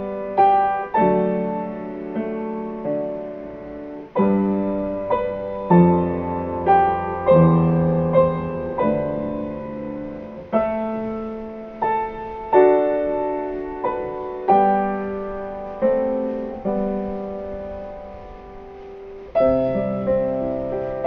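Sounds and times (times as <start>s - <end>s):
piano playing slow chords: 0.0s - 21.0s.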